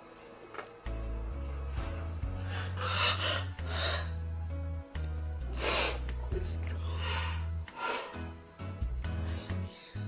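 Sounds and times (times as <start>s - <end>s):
slow music with low chords: 0.0s - 10.0s.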